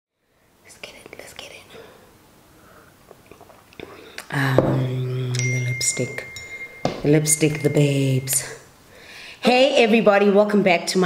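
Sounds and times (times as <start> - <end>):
person whispering: 0.6 - 2.0.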